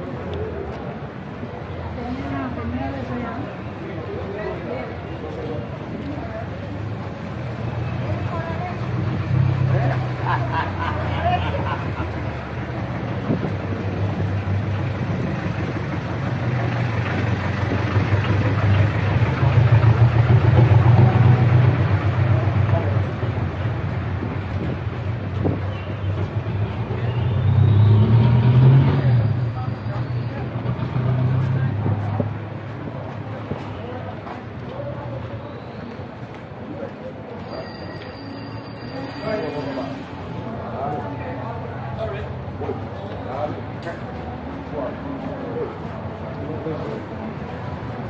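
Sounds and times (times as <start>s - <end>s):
vehicle engines running: 0.0s - 48.0s
vehicles passing close: 0.0s - 48.0s.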